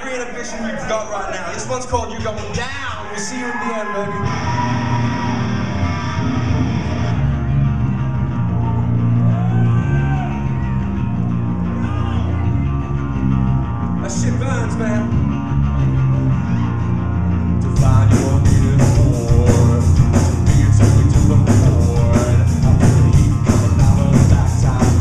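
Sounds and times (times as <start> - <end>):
electric guitar and bass riff: 4.0 - 25.0
drum kit: 17.6 - 25.0.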